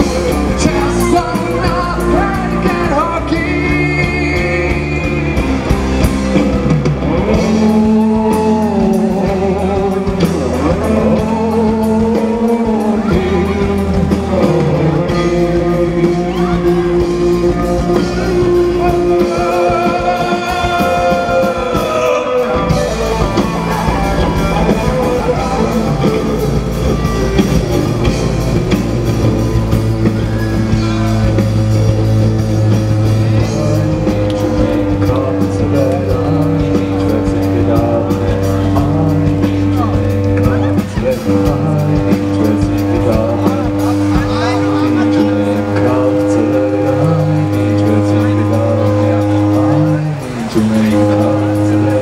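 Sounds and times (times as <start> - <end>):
bass guitar: 0.0 - 52.0
distorted electric guitars: 0.0 - 52.0
drum kit: 0.0 - 52.0
man singing: 0.0 - 52.0.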